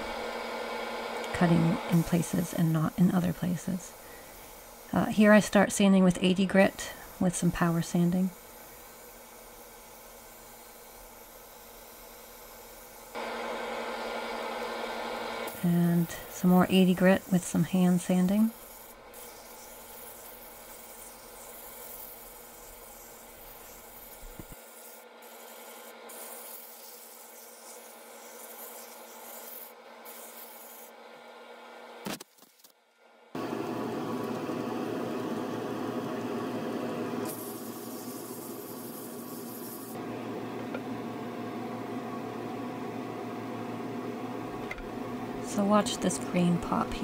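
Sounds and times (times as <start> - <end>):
lathe motor hum: 0.0 - 5.0, 13.1 - 18.0, 33.4 - 39.3, 39.9 - 47.0
sandpaper rubbing on spinning wood: 1.5 - 5.8, 15.5 - 31.0, 37.3 - 40.0.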